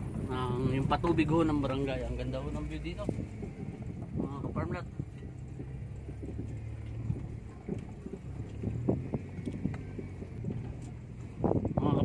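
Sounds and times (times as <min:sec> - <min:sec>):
car engine humming: 0:00.0 - 0:12.0
car knocks and rattles: 0:00.9 - 0:11.8.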